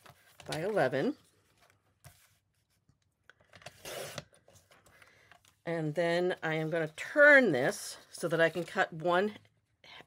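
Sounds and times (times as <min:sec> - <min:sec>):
paper rustling: 0:00.0 - 0:03.0.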